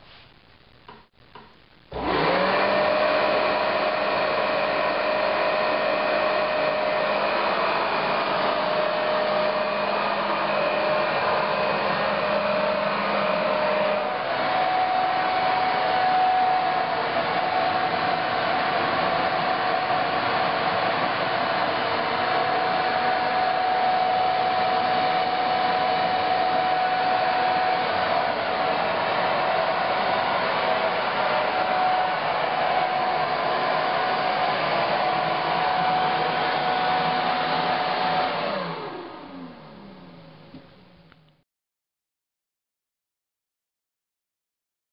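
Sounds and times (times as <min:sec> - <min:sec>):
electric blower whining: 0:01.9 - 0:41.3.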